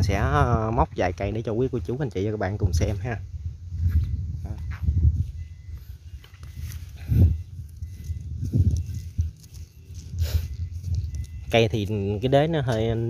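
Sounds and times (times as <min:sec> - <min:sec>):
footsteps through grass: 0:05.2 - 0:13.0.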